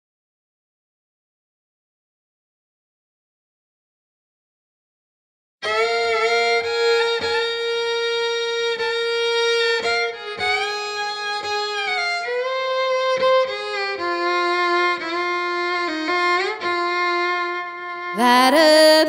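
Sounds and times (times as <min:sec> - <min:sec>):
solo fiddle bowed notes: 0:05.6 - 0:19.0.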